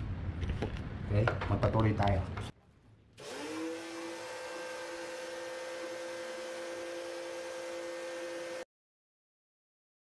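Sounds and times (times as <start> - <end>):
sprayer pump motor humming: 3.2 - 8.6.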